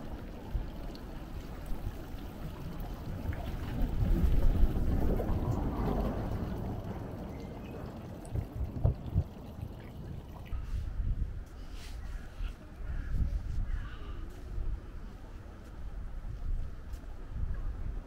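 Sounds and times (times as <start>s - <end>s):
water splashing into fountain basin: 0.0s - 10.6s
wind rumbling on microphone: 0.0s - 18.0s.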